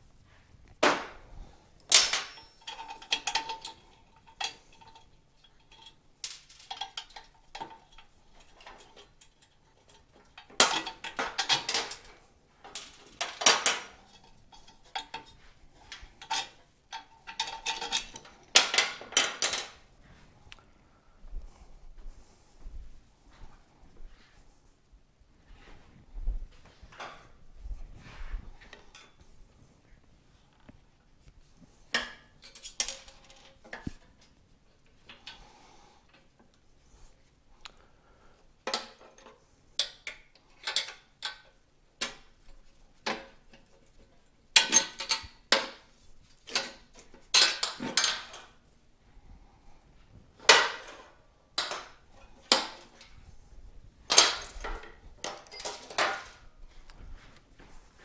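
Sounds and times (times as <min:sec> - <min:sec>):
metal hand tools clinking: 0:01.8 - 0:19.7, 0:54.1 - 0:56.5.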